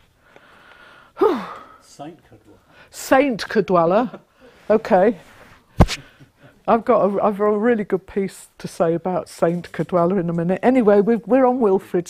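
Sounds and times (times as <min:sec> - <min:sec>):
woman sighing: 0:01.2 - 0:01.8.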